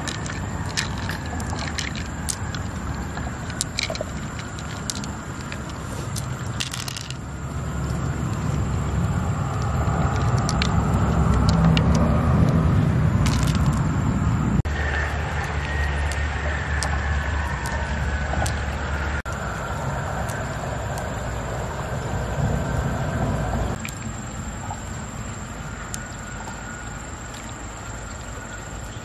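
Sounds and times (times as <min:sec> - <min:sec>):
pearls clicking together: 0:00.0 - 0:08.5, 0:09.4 - 0:12.6, 0:13.2 - 0:13.8, 0:14.9 - 0:18.7
steady low rumble: 0:00.0 - 0:29.0.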